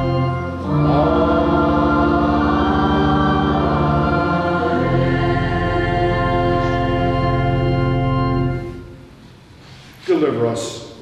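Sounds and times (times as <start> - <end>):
voices singing: 0.0 - 8.3
church organ chords: 0.0 - 9.2.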